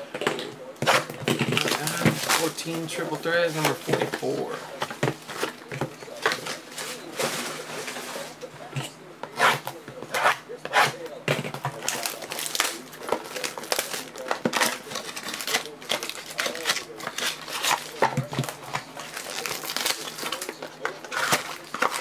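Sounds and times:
foil pack crinkling: 1.4s - 8.7s, 11.6s - 22.0s.

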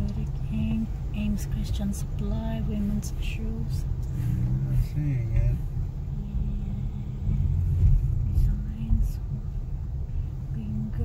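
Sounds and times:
car engine and tyres rumbling: 0.0s - 11.0s.

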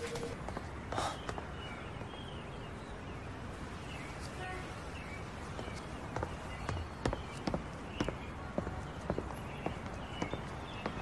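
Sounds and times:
footsteps on stone paving: 0.0s - 1.8s, 5.4s - 11.0s.

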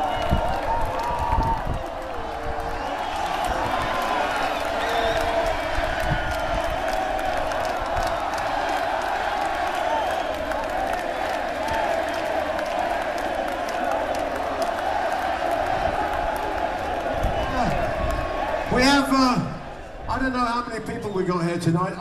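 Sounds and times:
whoops: 0.0s - 11.0s, 15.7s - 18.5s
scattered claps: 0.0s - 18.6s
crowd chanting and cheering: 0.0s - 20.6s.

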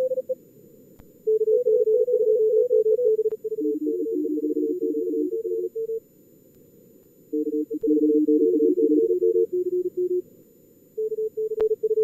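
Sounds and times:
morse code tones: 0.0s - 0.4s, 1.3s - 6.0s, 7.3s - 10.2s.

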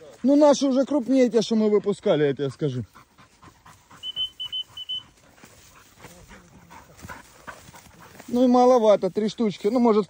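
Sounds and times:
dog panting: 0.0s - 9.3s
short high bird call: 4.0s - 5.1s.

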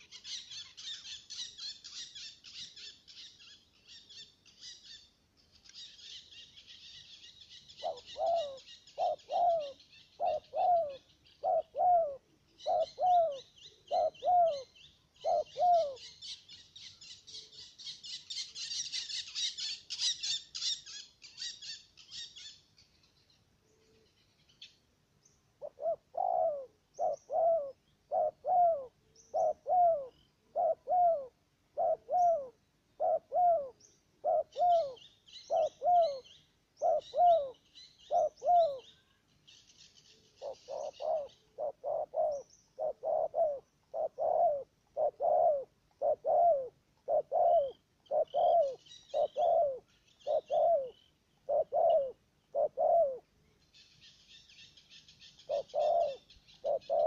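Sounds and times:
dove cooing: 0.0s - 3.3s, 6.8s - 21.5s, 25.6s - 39.2s, 40.2s - 53.3s, 55.2s - 57.0s
small birds chirping: 0.0s - 57.0s.

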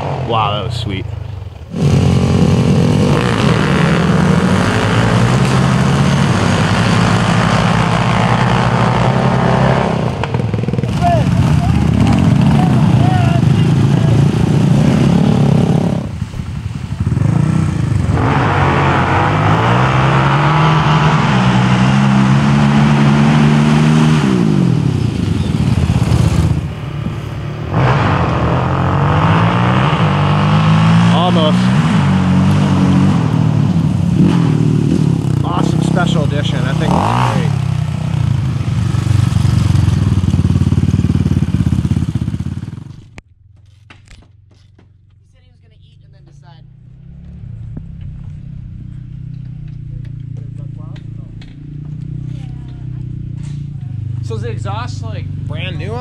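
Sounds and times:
quad engines revving: 0.0s - 43.2s, 46.0s - 56.0s.

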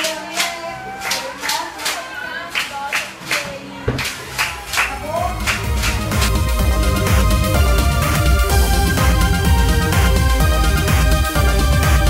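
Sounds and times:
hands clapping in rhythm: 0.0s - 12.0s
electronic music with deep bass: 4.6s - 12.0s.

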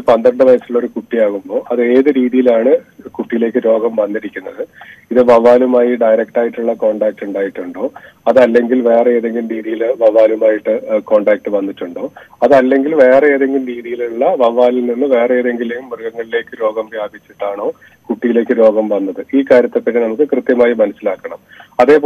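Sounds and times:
man speaking over telephone: 0.0s - 22.0s.

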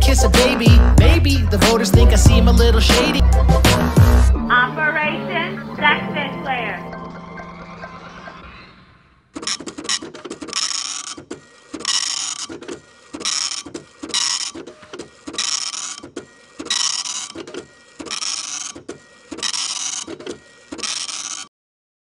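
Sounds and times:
printer rasping bursts: 9.3s - 21.5s
sharp mechanical clicks: 9.3s - 21.5s.

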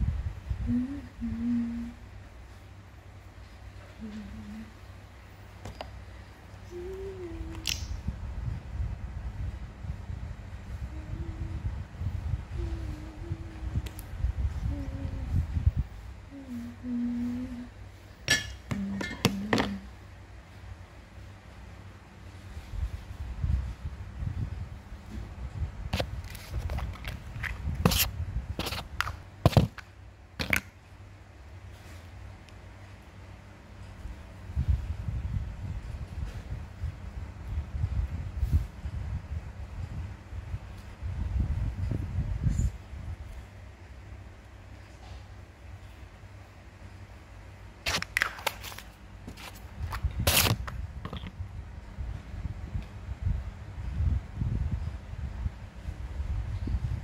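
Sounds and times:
low hum: 0.0s - 47.8s
objects knocking and scraping: 51.0s - 51.4s.

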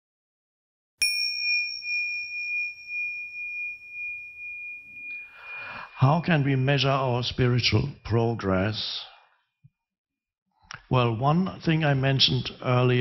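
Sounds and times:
bell chime ringing: 1.0s - 8.7s.

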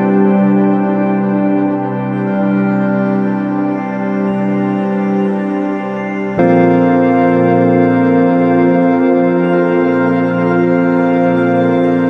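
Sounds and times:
sustained organ-like chord: 0.0s - 12.0s.

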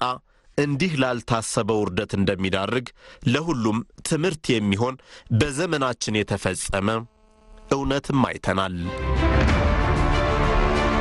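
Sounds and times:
man speaking: 0.0s - 7.1s, 7.7s - 9.0s.

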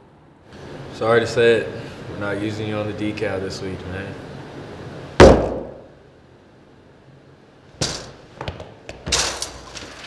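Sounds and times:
hands slamming on wooden table: 5.2s - 5.8s.

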